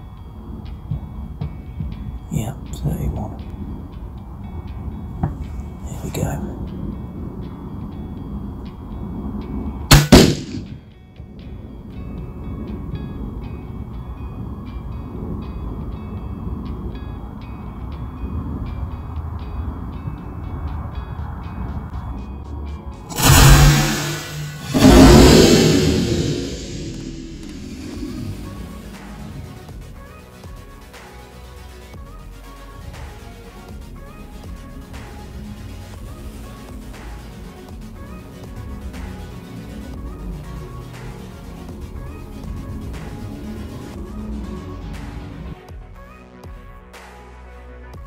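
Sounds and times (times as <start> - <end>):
music with ticking beat: 0.1 - 5.7, 16.5 - 23.1
sharp loud bang: 9.9 - 10.8, 23.1 - 29.5
loud rumbling booms: 23.1 - 29.7.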